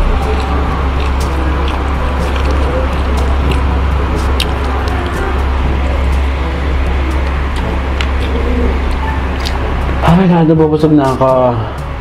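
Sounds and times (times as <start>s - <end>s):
chewing clicks: 0.0s - 5.2s
low background rumble: 0.0s - 12.0s.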